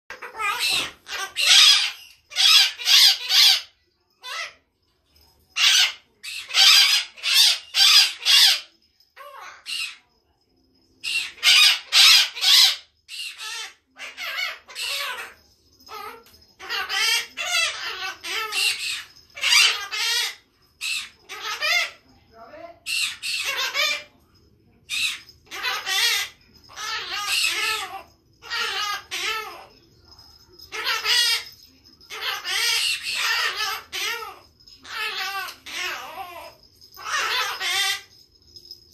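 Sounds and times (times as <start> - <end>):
parrot squawking and chattering: 0.0 - 4.7, 5.5 - 10.0, 11.0 - 24.2, 24.8 - 38.9.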